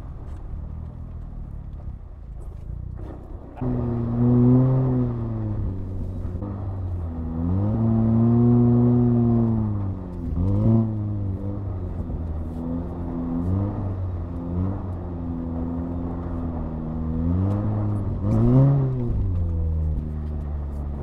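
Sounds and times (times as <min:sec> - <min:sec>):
turbocharged car engine revving: 0:03.0 - 0:21.0.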